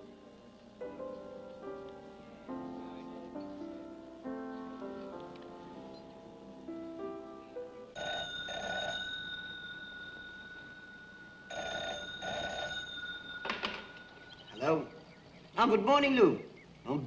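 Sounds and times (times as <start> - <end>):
soft piano music: 0.0 - 8.5
desk telephone ringing: 8.0 - 14.6.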